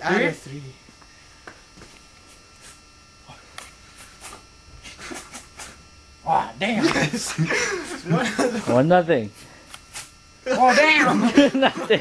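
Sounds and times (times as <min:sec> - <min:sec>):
electrical hum and buzz: 0:00.0 - 0:12.0.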